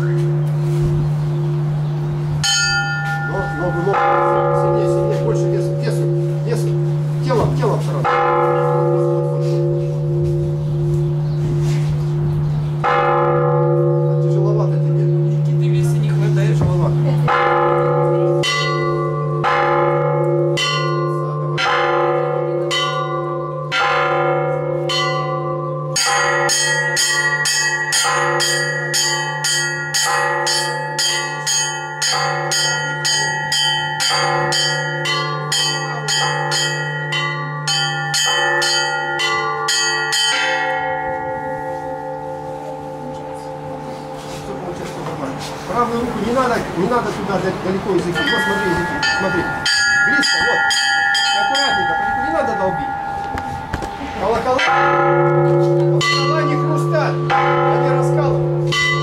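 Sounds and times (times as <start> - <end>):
deep church bell strikes: 0.0 - 59.0
middle bells striking: 0.0 - 59.0
small treble bells chiming: 2.4 - 12.2, 12.8 - 47.1, 47.8 - 59.0.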